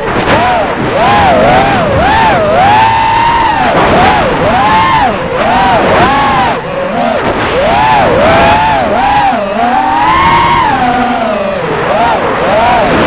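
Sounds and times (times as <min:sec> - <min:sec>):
electric motor and propeller whine: 0:00.0 - 0:13.0.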